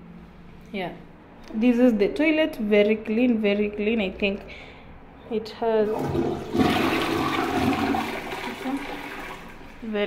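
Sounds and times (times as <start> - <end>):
toilet flushing: 5.8 - 9.9.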